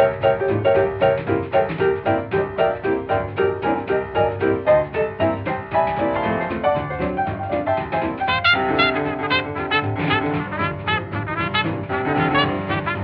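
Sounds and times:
piano: 0:00.0 - 0:13.0
swing jazz record: 0:00.0 - 0:13.0
trumpet and trombone: 0:08.2 - 0:13.0.

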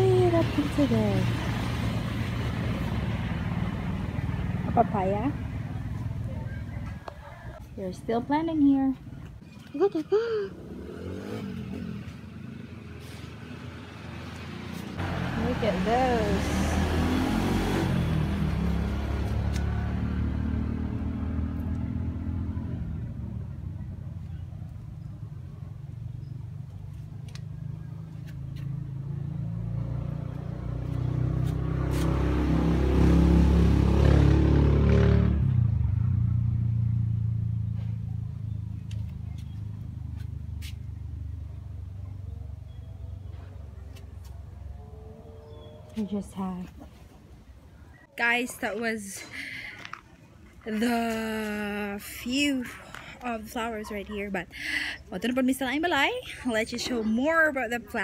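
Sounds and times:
motor vehicle engine rumble: 0:00.0 - 0:58.0.

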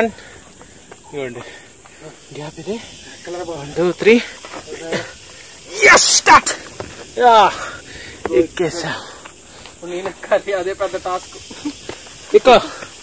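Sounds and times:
hard breathing: 0:00.0 - 0:03.2, 0:07.5 - 0:09.8, 0:11.3 - 0:13.0.

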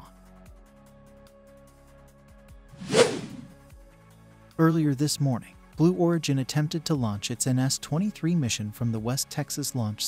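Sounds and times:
whoosh sound effect: 0:02.8 - 0:03.6.

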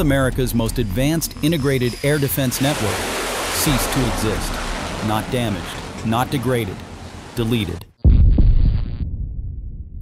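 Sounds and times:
higher sound layer: 0:02.4 - 0:07.8
deep bass impact boom: 0:08.0 - 0:10.0.

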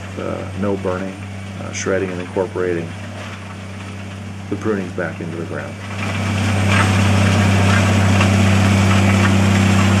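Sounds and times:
faint crackles: 0:00.0 - 0:10.0
mulcher engine hum: 0:00.0 - 0:10.0
shredding rush: 0:04.5 - 0:10.0.

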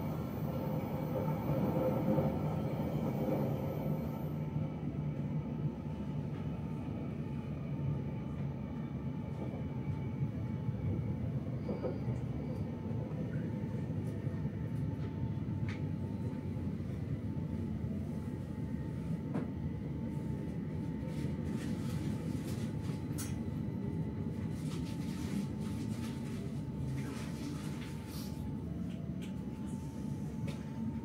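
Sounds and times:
train rumbling on rails: 0:00.0 - 0:31.0.

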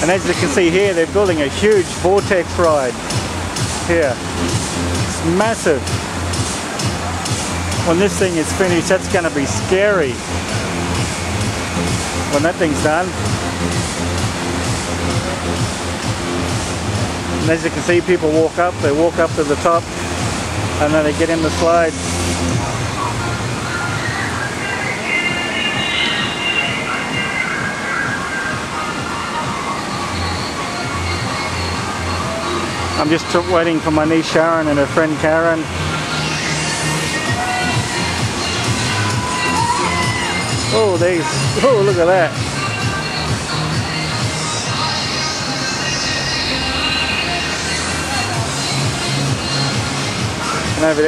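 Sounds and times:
music playing: 0:00.0 - 0:51.0
running water: 0:00.0 - 0:51.0
steady wash of noise: 0:00.0 - 0:51.0.

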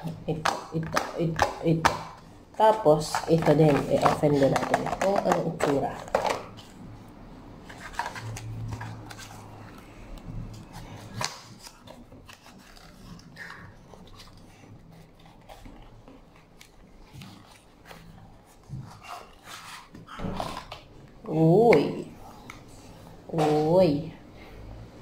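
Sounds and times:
packaging being handled: 0:07.6 - 0:20.9.

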